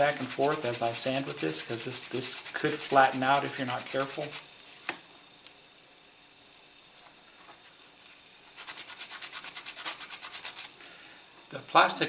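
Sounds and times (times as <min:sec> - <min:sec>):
sanding stick scraping plastic: 0:00.0 - 0:04.4, 0:07.9 - 0:10.7.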